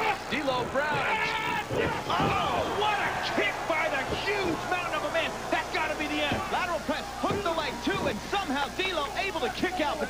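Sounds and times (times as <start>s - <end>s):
arena crowd noise: 0.0s - 10.0s
man commentating: 0.0s - 10.0s.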